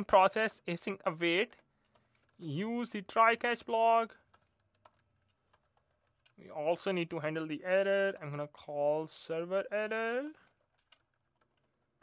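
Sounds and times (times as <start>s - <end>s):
computer keyboard typing: 1.8s - 2.4s, 4.2s - 6.4s, 10.2s - 11.9s.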